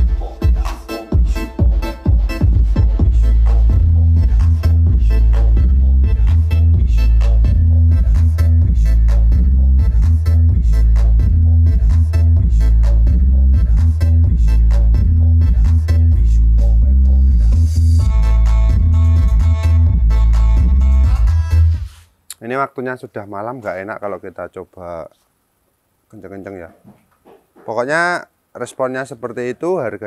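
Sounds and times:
bass-heavy music: 0.0 - 22.0.

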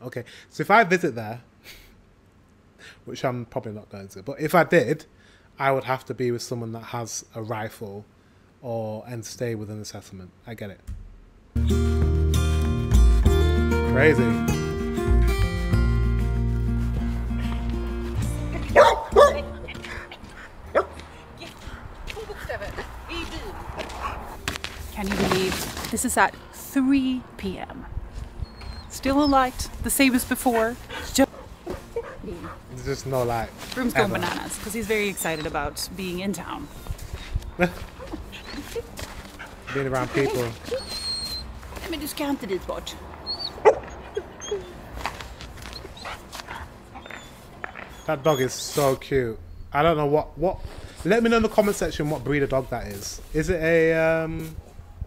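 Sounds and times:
background music: 11.6 - 23.1, 28.9 - 43.3
dog barking: 18.7 - 19.6, 20.7 - 21.0, 43.5 - 44.0
dog whining and yipping: 28.4 - 29.8, 35.0 - 35.9, 36.6 - 41.8, 43.2 - 48.8.

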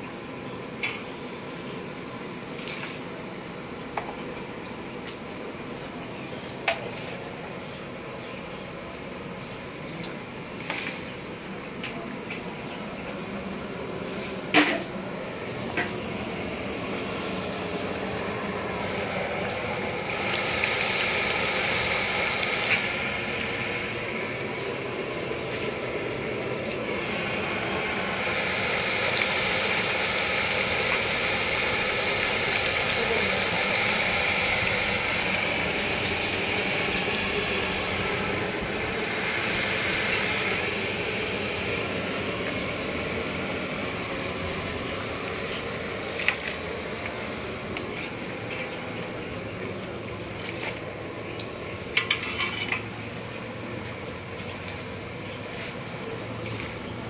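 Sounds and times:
wok cooking hiss: 0.0 - 57.0.

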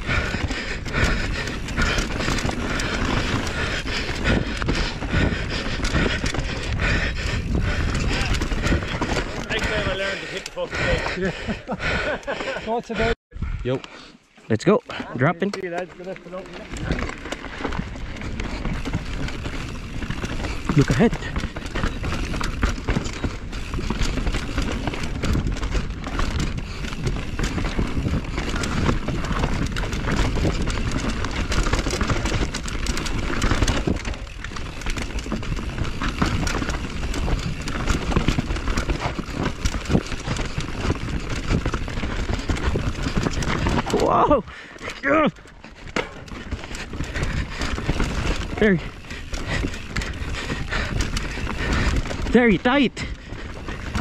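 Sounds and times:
wind rush on microphone: 0.0 - 10.0
bike rattling over bumps: 0.0 - 13.2, 14.9 - 54.0.

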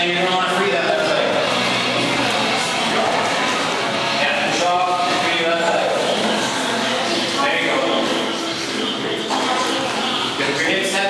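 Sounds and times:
people talking indistinctly: 0.0 - 11.0
steady background noise: 0.0 - 11.0.

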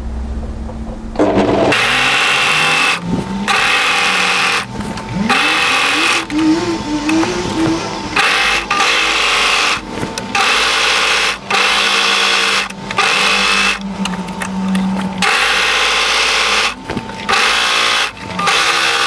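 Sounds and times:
overlocker stitching fabric: 1.2 - 13.8.

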